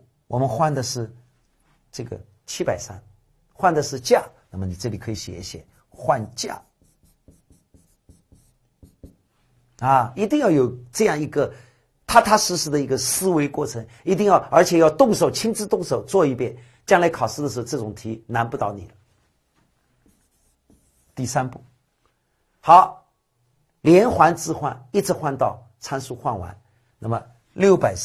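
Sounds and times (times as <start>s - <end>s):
marker scratching on whiteboard: 5.6s - 9.4s, 20.0s - 21.6s.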